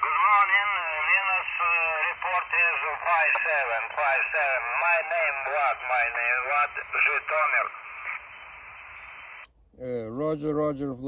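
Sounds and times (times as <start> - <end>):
man speaking: 0.0 - 7.8, 9.8 - 11.0
radio static hiss: 0.0 - 9.5.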